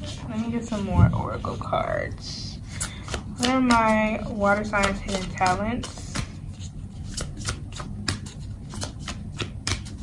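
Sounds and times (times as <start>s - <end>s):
cards being shuffled: 2.7s - 10.0s.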